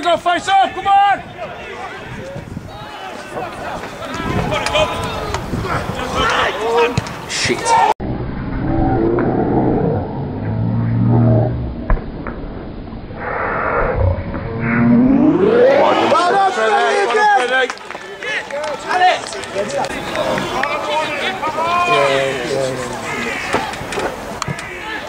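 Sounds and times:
people shouting outdoors: 0.0 - 7.0, 18.7 - 23.9, 24.5 - 25.0.

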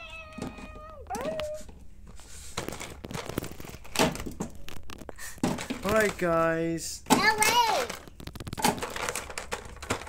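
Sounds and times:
drawn-out meow-like calls: 0.0 - 1.6.

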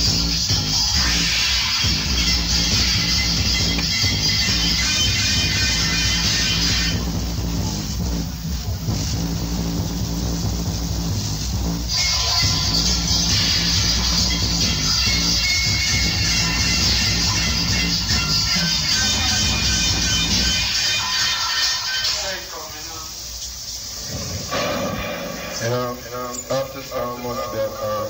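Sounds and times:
reggae through sound system: 0.0 - 28.0.

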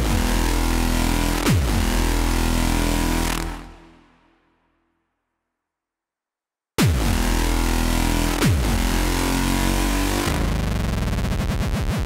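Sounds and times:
buzzing synth drone: 0.0 - 4.0, 6.8 - 11.0.

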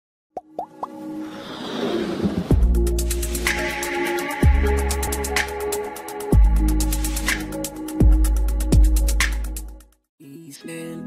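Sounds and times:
music: 0.4 - 11.0
whoosh: 1.2 - 3.7.

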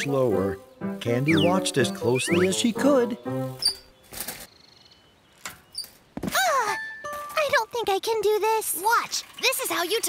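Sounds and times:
cartoon music: 0.0 - 3.8.

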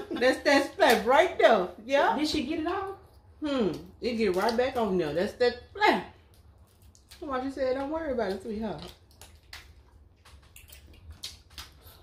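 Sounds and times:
chewing corn on the cob: 6.3 - 12.0.

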